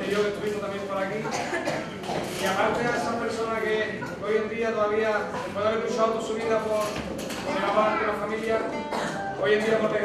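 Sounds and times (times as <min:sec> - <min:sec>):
acoustic guitar playing quietly: 0:00.0 - 0:10.0
man speaking: 0:02.4 - 0:06.9, 0:07.5 - 0:10.0.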